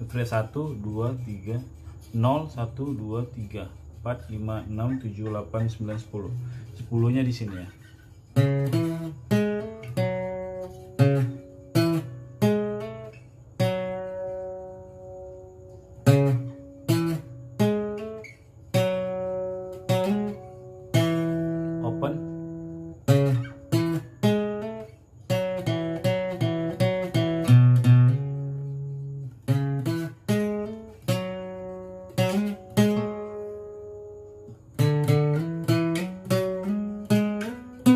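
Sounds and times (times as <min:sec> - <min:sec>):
fingerpicked acoustic guitar: 0:00.0 - 0:37.9.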